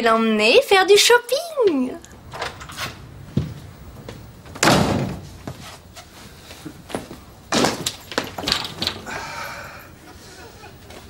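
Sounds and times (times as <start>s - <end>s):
front door banging shut: 4.5s - 5.5s, 7.5s - 9.2s.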